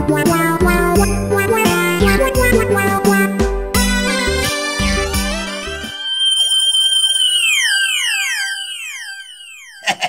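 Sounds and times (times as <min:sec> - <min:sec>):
falling pitch slides: 0:04.1 - 0:10.0
held high electronic tones: 0:04.1 - 0:10.0
wavering siren-like tone: 0:04.6 - 0:10.0.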